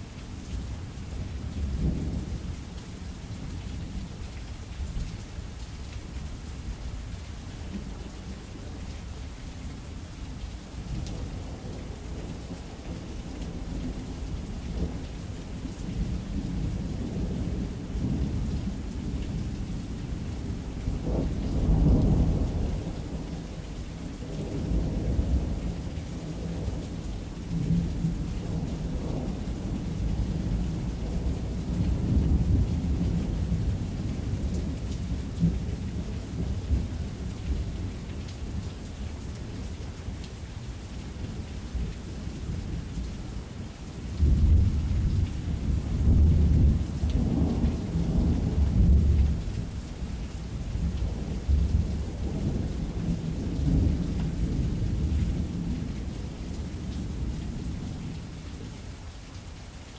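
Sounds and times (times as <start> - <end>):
steady rain: 0.0 - 59.9
rolling thunder: 44.2 - 49.8.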